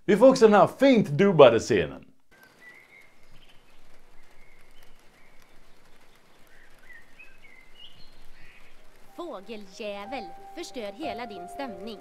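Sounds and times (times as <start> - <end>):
faint outdoor background hiss: 0.0 - 12.0
small bird chirping: 2.3 - 12.0.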